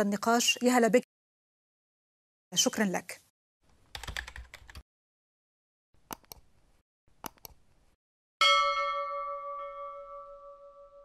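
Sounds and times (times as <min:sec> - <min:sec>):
keyboard typing clicks: 0:03.9 - 0:04.8, 0:06.1 - 0:06.5, 0:07.2 - 0:07.6
bell chime: 0:08.4 - 0:11.0.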